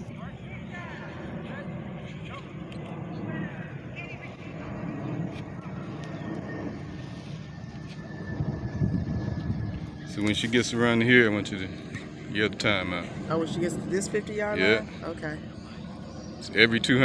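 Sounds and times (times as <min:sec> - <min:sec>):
low outdoor rumble: 0:00.0 - 0:17.0.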